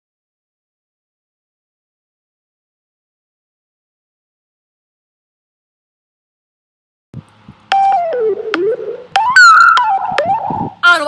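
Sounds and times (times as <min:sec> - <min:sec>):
swooping pitched tones: 0:07.7 - 0:10.8.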